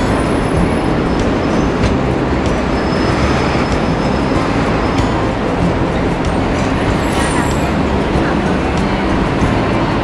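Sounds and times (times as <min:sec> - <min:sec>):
city street traffic rumble: 0:00.0 - 0:10.0.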